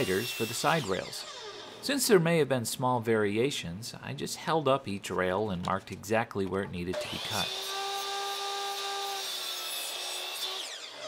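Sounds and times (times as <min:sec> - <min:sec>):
miter saw motor whining: 0:00.0 - 0:01.9, 0:07.0 - 0:11.0
saw cutting through wood: 0:00.0 - 0:01.9, 0:06.9 - 0:11.0.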